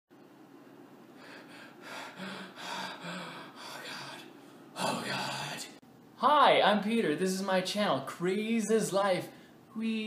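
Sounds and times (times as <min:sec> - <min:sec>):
man gasping: 0:01.2 - 0:05.6.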